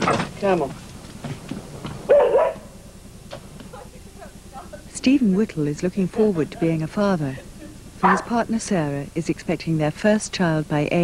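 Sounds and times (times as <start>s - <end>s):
dog barking: 2.1s - 2.7s, 8.0s - 8.4s.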